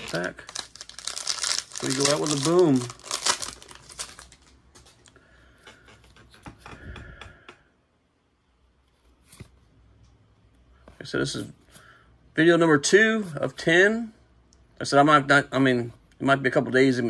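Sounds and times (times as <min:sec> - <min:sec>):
plastic wrapper crinkling and tearing: 0:00.0 - 0:05.1.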